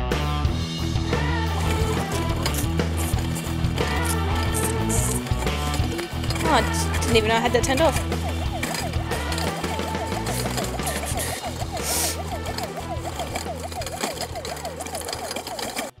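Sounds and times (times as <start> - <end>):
background music: 0.0 - 16.0
electronic toy siren yelping: 6.5 - 15.9.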